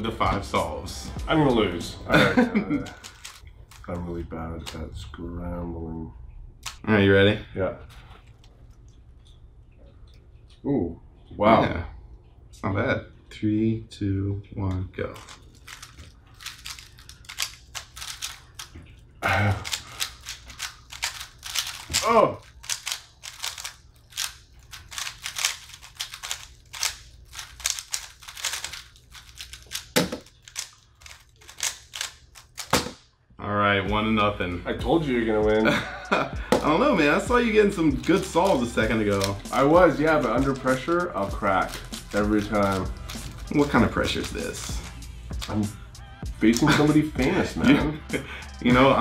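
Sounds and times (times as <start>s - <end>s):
low room hum: 0.0s - 49.0s
puzzle cubes clicking: 2.8s - 4.0s, 15.2s - 32.9s.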